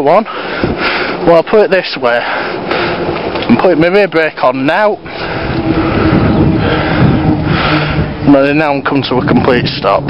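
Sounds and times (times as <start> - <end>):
low hum: 0.3 - 10.0.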